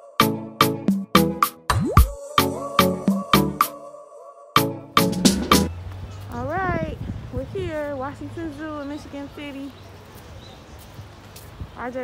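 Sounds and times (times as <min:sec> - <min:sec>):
person drawn-out vocal sound: 0:01.8 - 0:04.3.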